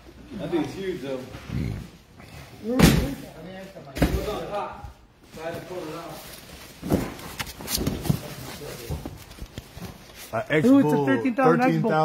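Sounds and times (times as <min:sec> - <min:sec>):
men talking: 0:00.3 - 0:01.8, 0:08.0 - 0:09.2, 0:10.2 - 0:12.0.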